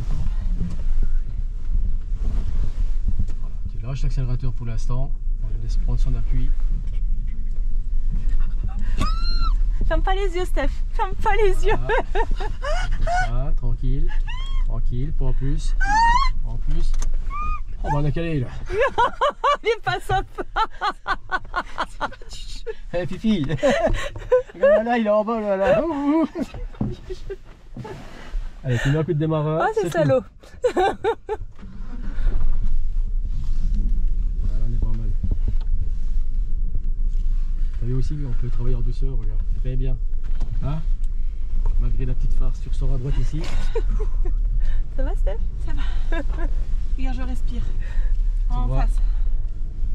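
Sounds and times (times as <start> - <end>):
vehicle engine rumbling at low revs: 0.0 - 49.9
person crying out: 14.2 - 14.7, 15.8 - 16.4
person laughing high-pitched: 18.7 - 22.3, 30.6 - 31.4.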